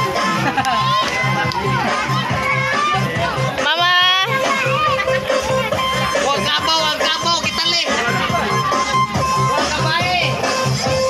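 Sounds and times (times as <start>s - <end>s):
people talking: 0.0s - 10.7s
music with steady beat: 0.0s - 11.0s
children's voices: 0.1s - 10.4s.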